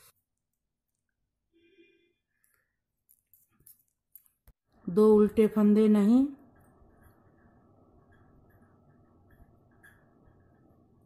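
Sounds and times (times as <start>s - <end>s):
woman counting: 4.9s - 6.4s.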